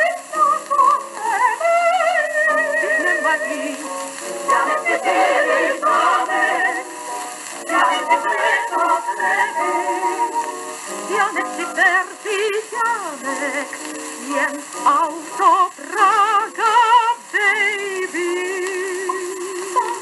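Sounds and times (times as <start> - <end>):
faint record clicks: 0.0 - 20.0
foxtrot song with singing: 0.0 - 20.0
record surface hiss: 0.0 - 20.0.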